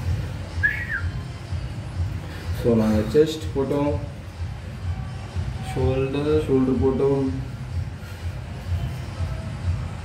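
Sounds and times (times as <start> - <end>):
music with steady bass beat: 0.0 - 10.0
short rising and falling whistle: 0.5 - 1.2.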